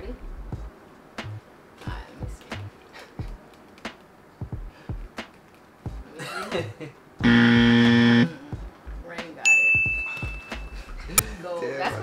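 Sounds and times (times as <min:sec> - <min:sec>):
flat buzzer: 0:07.2 - 0:08.4
bright ding: 0:09.5 - 0:10.9.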